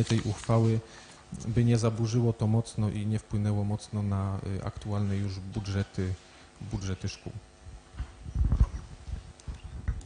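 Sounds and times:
microphone bumped thumps: 7.9s - 10.0s.

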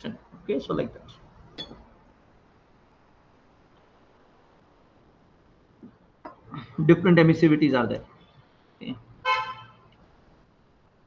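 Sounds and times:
faint room hiss: 0.0s - 11.0s
horn-like toot: 9.2s - 9.8s.

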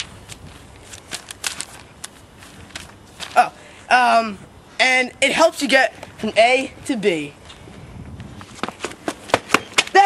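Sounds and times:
notebook pages flipping: 0.0s - 3.4s.

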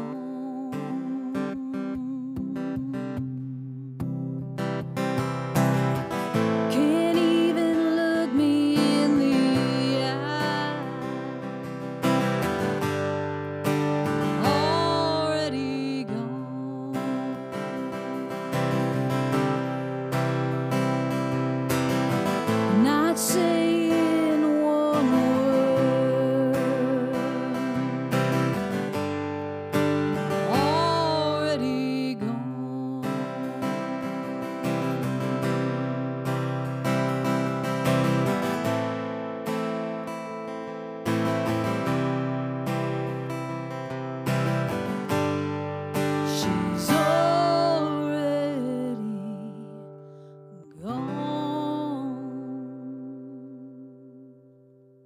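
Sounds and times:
woman singing: 0.0s - 5.0s, 6.3s - 12.3s, 13.7s - 19.9s, 22.5s - 29.1s, 30.2s - 35.9s, 46.0s - 54.6s
strummed acoustic guitar: 0.0s - 55.0s.

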